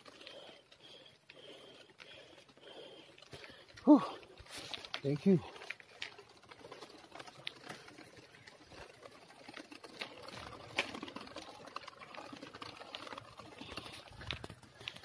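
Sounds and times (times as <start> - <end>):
bike tyres ticking and rattling: 0.0 - 15.0.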